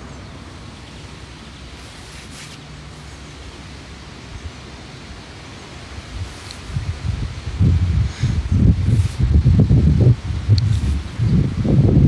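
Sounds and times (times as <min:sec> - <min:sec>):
wind buffeting microphone: 0:05.8 - 0:12.0.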